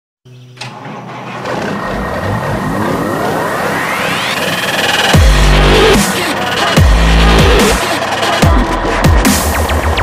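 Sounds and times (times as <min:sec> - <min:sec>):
electronic hit: 0:00.7 - 0:08.1
electronic rising sweep: 0:01.1 - 0:08.2.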